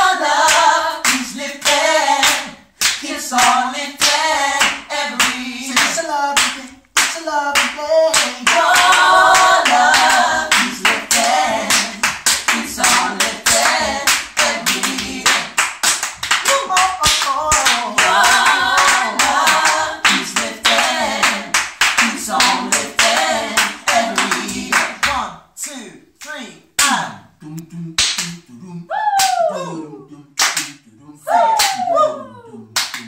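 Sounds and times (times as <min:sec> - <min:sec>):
vocal quartet singing in harmony: 0:00.0 - 0:15.8, 0:16.4 - 0:25.5, 0:27.0 - 0:33.0
hand-clapping: 0:00.4 - 0:25.2, 0:28.0 - 0:28.4, 0:29.2 - 0:29.4, 0:30.4 - 0:30.8, 0:31.4 - 0:31.9, 0:32.8 - 0:33.0.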